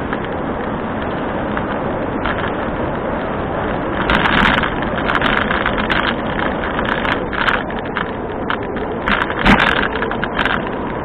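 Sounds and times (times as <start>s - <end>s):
bicycle road noise: 0.0s - 11.0s
sharp clicks from bike: 0.0s - 11.0s
wind rush: 0.0s - 11.0s.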